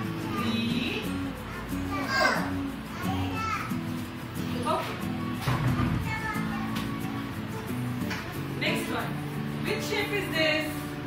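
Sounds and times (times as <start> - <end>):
children chattering: 0.0 - 8.6
background music low notes: 0.0 - 11.0.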